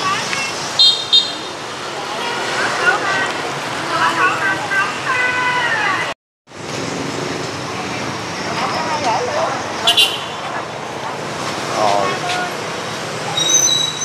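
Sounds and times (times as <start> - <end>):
people talking: 0.0 - 0.8, 1.8 - 6.2, 7.6 - 12.6
traffic noise: 0.0 - 14.0.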